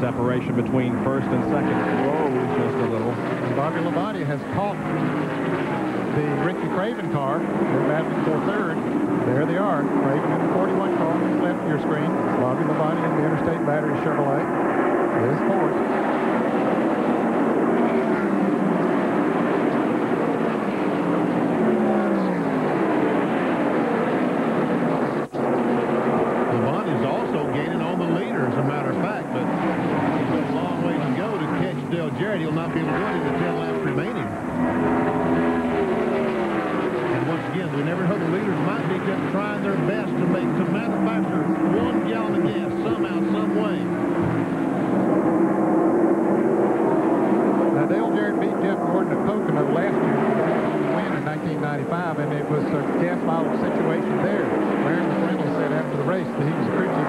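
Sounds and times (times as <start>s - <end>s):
race car engines at full throttle: 0.0s - 57.0s.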